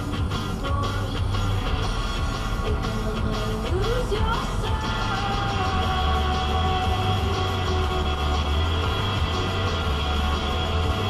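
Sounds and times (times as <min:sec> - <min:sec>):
music on car radio: 0:00.0 - 0:11.0.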